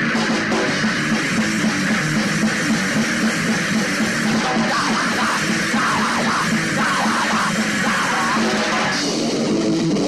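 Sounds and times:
distorted guitar and bass: 0.0s - 10.0s
steady drumming: 0.0s - 10.0s.

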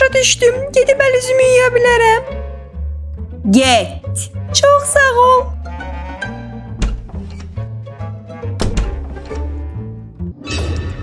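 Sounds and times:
door shutting: 6.7s - 7.7s, 8.5s - 9.6s.

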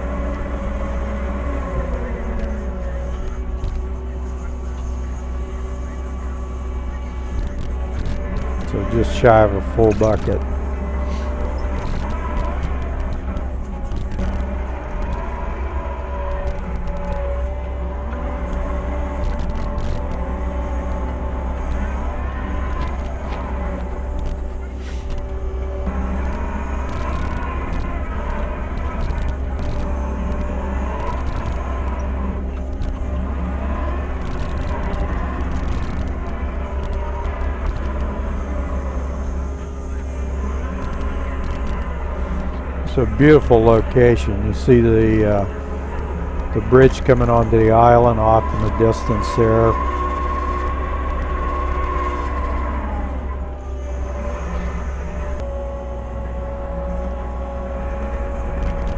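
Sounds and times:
loader engine running under load: 0.0s - 58.9s.

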